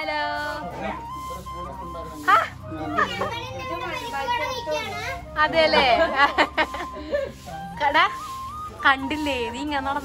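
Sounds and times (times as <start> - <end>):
children talking and calling out: 2.2 - 5.6.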